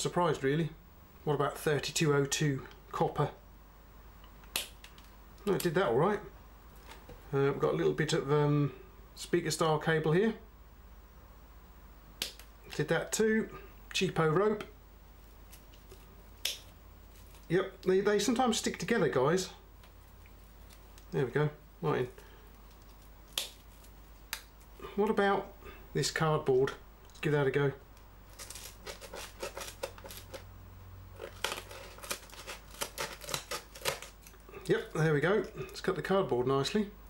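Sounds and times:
scissors snipping cardboard: 0:31.4 - 0:34.1.

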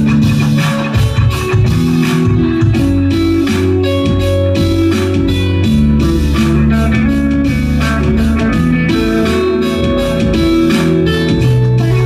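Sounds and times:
electric guitar: 0:00.0 - 0:12.0
held bass notes: 0:00.0 - 0:12.0
steady beat: 0:00.0 - 0:12.0.

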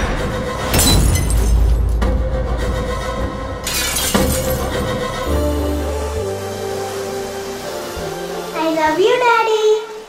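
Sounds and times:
glass breaking crash: 0:00.7 - 0:02.0, 0:03.6 - 0:05.0.

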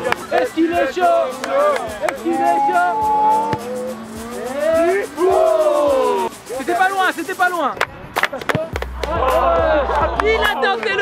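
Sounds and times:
background music: 0:00.0 - 0:11.0
young men crying out ooh: 0:00.5 - 0:06.4.

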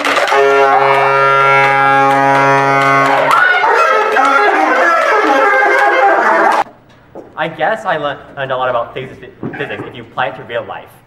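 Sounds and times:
wind instruments holding a chord: 0:00.0 - 0:06.7.

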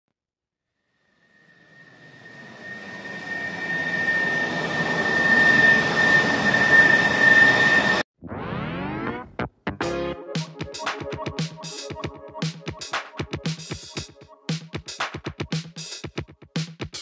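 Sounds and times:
jet engine whine: 0:01.1 - 0:08.1.

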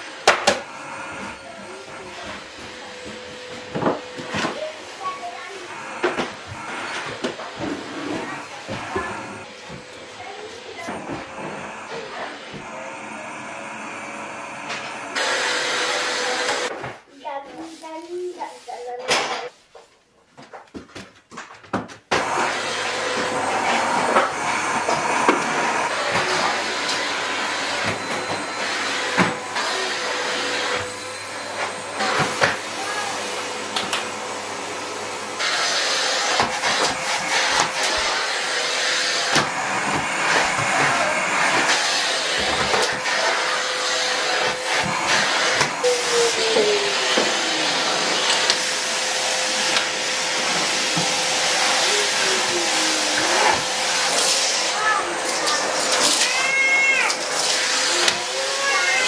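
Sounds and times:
vacuum cleaner running: 0:00.0 - 0:16.8, 0:22.1 - 0:59.0.

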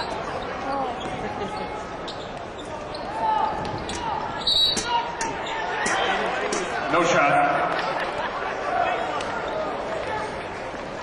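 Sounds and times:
sneakers squeaking: 0:00.0 - 0:06.0
arena crowd hum: 0:00.0 - 0:11.0.

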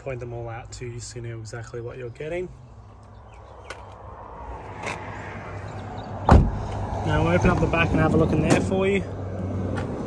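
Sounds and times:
car door shutting with heavy thud: 0:06.2 - 0:06.6.

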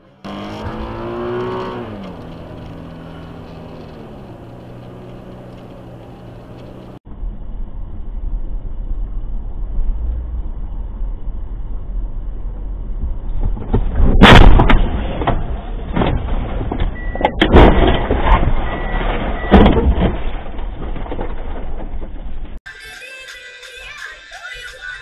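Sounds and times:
road and engine rumble: 0:00.0 - 0:22.7
car crash impact: 0:13.4 - 0:22.2
scraping and jolting: 0:13.6 - 0:22.6.

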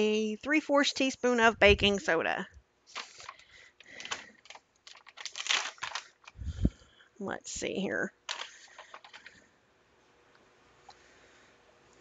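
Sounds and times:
plastic pouch crinkling: 0:02.9 - 0:06.8, 0:08.2 - 0:09.4.

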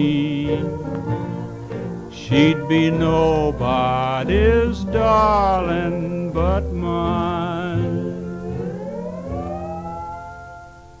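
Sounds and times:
guitar and bass chord: 0:00.0 - 0:11.0.

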